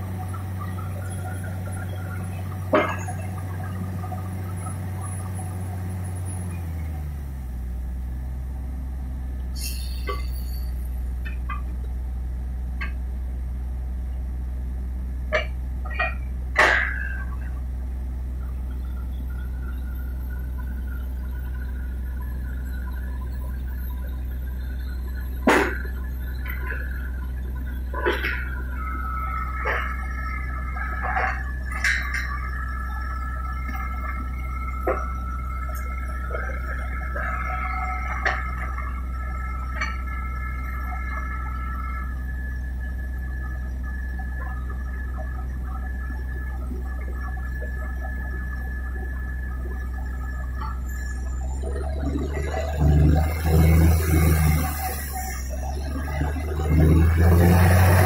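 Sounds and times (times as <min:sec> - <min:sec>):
drilling rig droning: 0:00.0 - 0:08.1, 0:09.3 - 0:58.0
high squealing tones: 0:09.6 - 0:11.0, 0:18.7 - 0:58.0.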